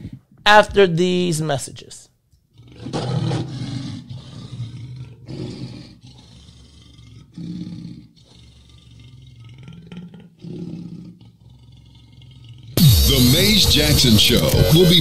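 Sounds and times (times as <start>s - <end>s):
big cat growling roars: 2.5s - 12.8s.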